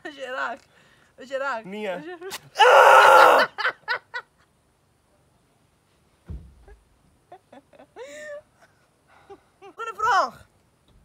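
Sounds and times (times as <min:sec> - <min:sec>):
man yelling in pain: 0:02.6 - 0:03.5
low thump: 0:06.2 - 0:06.8.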